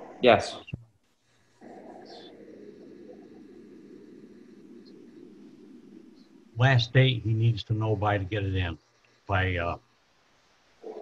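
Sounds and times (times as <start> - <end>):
low hiss on audio line: 0.0 - 11.0.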